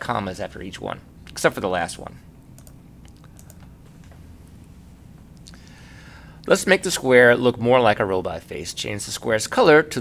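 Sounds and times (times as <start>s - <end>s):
low steady hum: 0.0s - 10.0s
computer key clicks: 2.6s - 3.7s.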